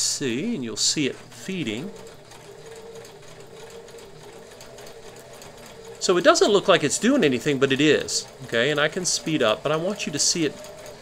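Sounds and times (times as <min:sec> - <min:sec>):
sewing machine humming: 0:00.0 - 0:11.0.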